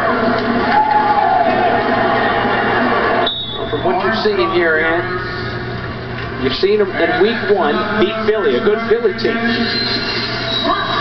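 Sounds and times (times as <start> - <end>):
arena crowd noise: 0.0 - 11.0
music over public address: 0.0 - 11.0.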